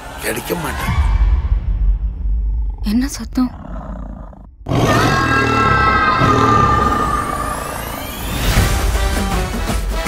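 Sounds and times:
loud animal roar: 3.5 - 8.1.

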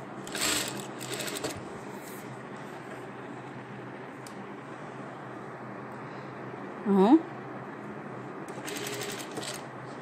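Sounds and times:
sewing machine stitching: 0.3 - 1.6, 8.5 - 9.7.

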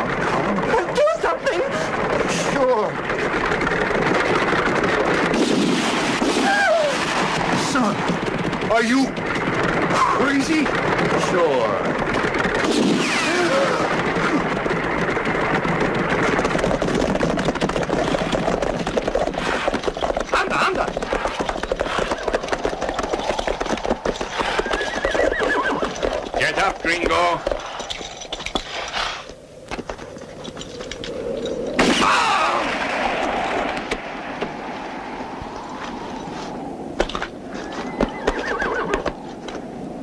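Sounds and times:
sharp cracks: 2.0 - 36.3
horses neighing: 6.3 - 33.8, 37.0 - 39.7
hoofbeats: 6.4 - 31.8, 35.4 - 39.7.

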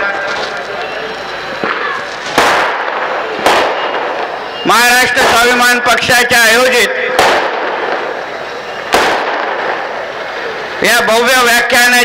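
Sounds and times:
firecrackers banging: 0.0 - 12.0.

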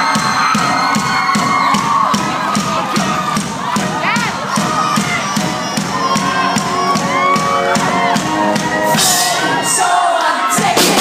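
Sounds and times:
drum kit playing steady beat: 0.0 - 9.9, 10.5 - 11.0
crowd cheering and shouting: 0.0 - 11.0.

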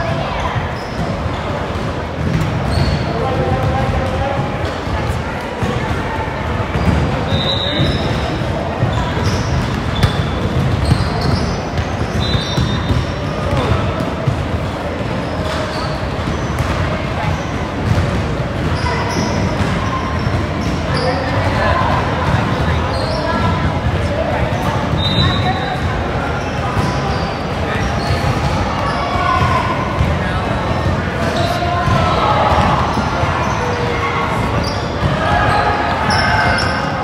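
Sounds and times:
voices echoing in gym: 0.0 - 37.0.

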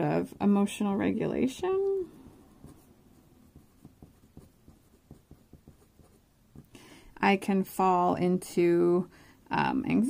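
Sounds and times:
pen scratching on paper: 2.3 - 6.7.

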